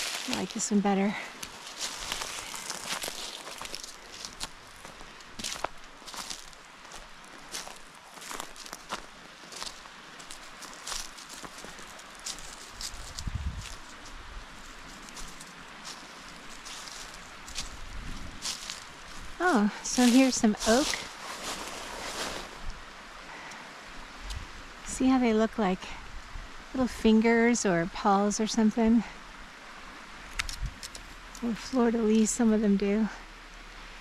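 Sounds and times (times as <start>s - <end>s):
footsteps crunching dry leaves: 0.0s - 22.7s.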